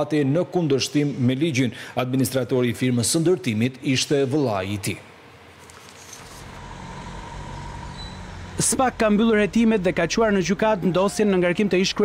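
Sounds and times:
low rumble of road traffic: 5.7 - 12.0.

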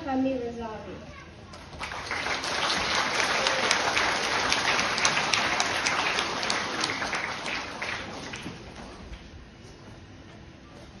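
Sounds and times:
children clapping: 1.5 - 9.2.

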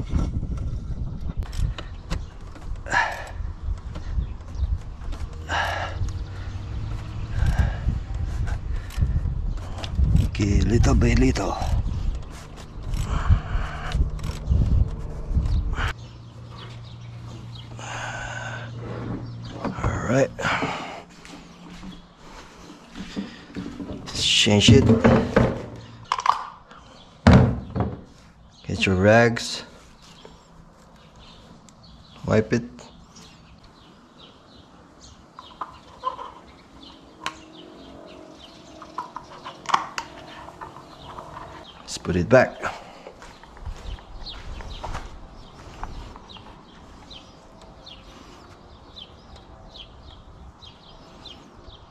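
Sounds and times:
birds chirping: 0.0 - 51.9.

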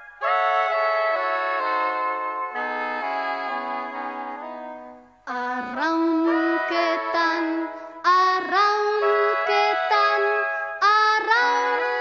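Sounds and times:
instrumental backing: 0.0 - 12.0.

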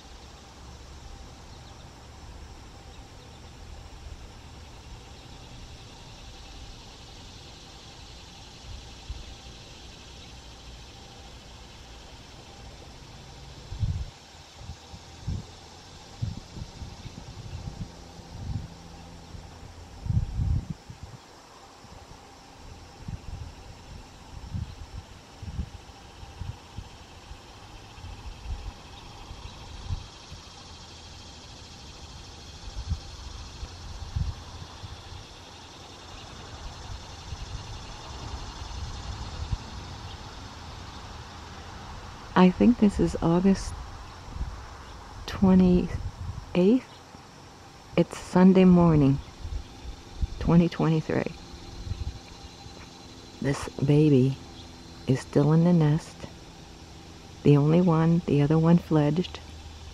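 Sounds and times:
faint high hiss: 0.0 - 59.9
low outdoor rumble: 0.0 - 59.9.

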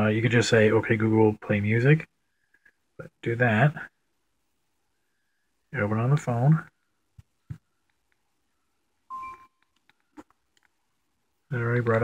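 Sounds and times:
smartphone electronic chime: 9.1 - 9.6.

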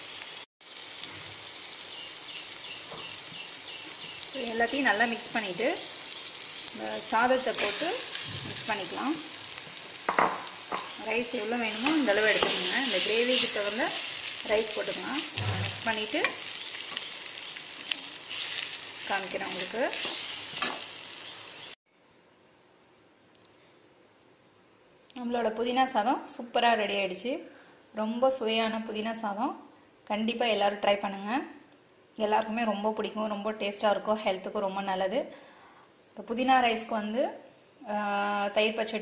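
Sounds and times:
paste sizzling in oil: 0.0 - 21.8.

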